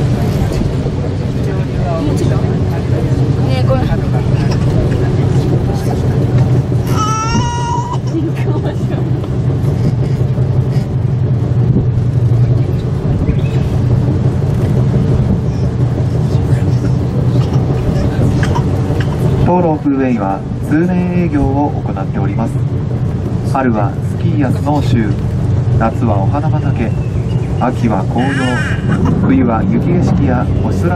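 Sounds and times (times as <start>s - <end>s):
cable car cabin humming: 0.0s - 30.9s
high-pitched voice crying out: 6.9s - 8.1s, 28.2s - 28.9s.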